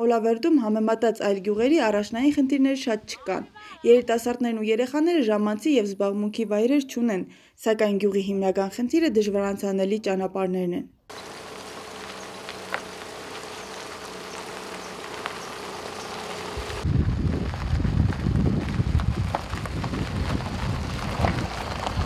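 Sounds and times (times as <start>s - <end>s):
low hum: 11.1s - 19.1s
car driving on gravel: 11.1s - 22.0s.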